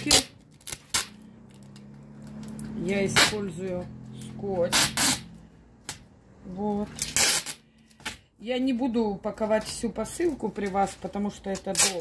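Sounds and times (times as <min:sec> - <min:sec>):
woman speaking: 0:00.0 - 0:00.4, 0:02.7 - 0:05.2, 0:06.4 - 0:07.2, 0:08.4 - 0:12.0.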